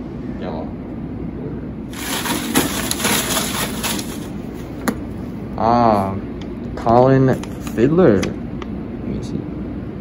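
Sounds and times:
paper cards rustling: 1.9s - 4.7s.

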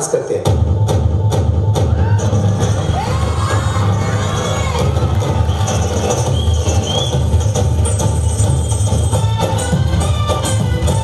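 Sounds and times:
loud dance music with bass: 0.0s - 11.0s
audience cheering: 1.8s - 7.5s
children shouting: 2.0s - 5.5s.

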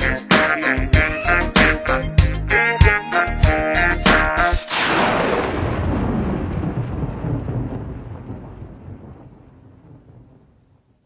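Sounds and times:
thunder-like rumble: 4.7s - 11.0s.

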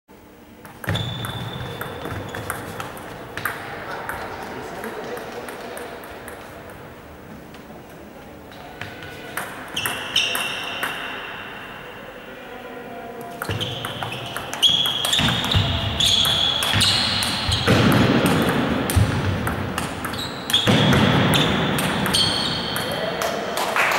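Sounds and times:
shoe squeaks: 0.8s - 2.9s, 9.7s - 11.3s, 13.4s - 17.8s, 20.0s - 23.0s
voices: 3.4s - 19.5s, 20.1s - 23.9s.

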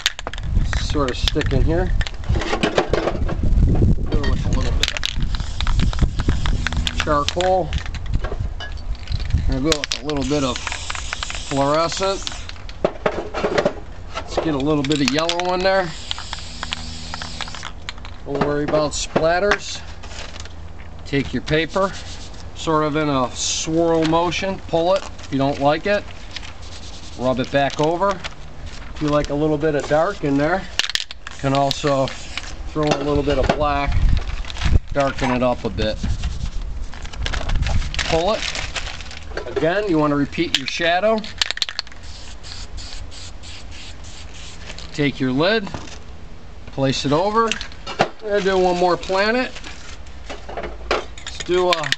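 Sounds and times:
nozzle spitting and clicking: 4.8s - 8.1s
spray can hissing: 5.2s - 7.4s, 10.2s - 12.6s, 15.8s - 17.7s, 32.2s - 32.5s, 41.9s - 44.8s.

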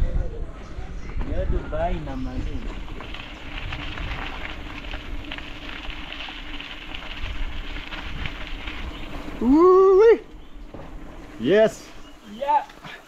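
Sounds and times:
wind on microphone: 0.0s - 12.2s
bike tyres rumbling on dirt: 1.1s - 13.0s
faint crunches: 2.5s - 9.6s
person whooping: 9.4s - 10.3s.

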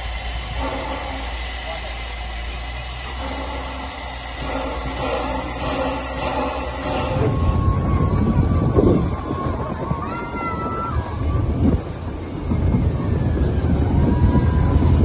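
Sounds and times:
steam locomotive hissing steam: 0.0s - 8.2s
train rumbling over bridge: 0.0s - 15.0s.

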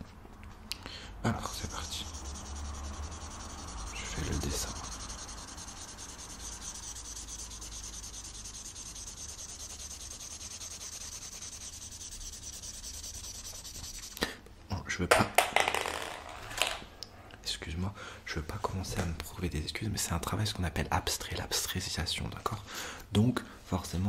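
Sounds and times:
pencil rubbing on paper: 1.3s - 14.2s.

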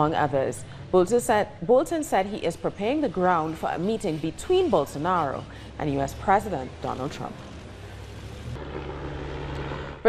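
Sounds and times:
street noise: 0.0s - 10.0s
vehicle engine driving past: 2.9s - 10.0s.

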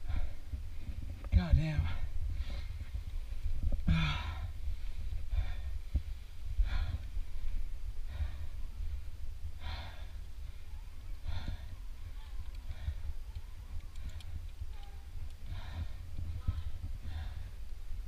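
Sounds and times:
person breathing hard: 0.0s - 1.1s, 1.8s - 18.0s
steady low rumble: 0.0s - 18.0s.

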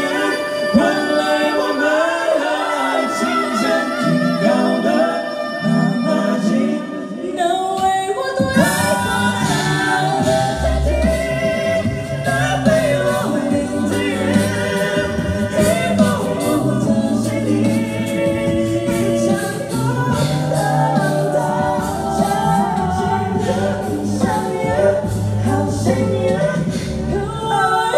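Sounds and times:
a cappella group singing harmonies: 0.0s - 27.9s
sung bass line: 8.6s - 27.5s.

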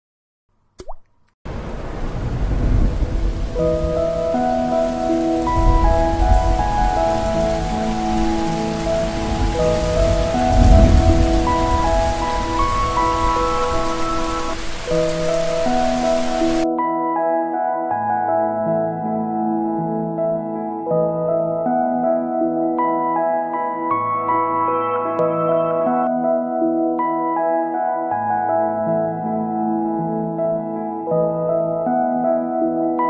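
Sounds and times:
heavy rain: 1.5s - 16.6s
rolling thunder: 1.5s - 16.6s
soft ambient music: 3.1s - 33.0s.

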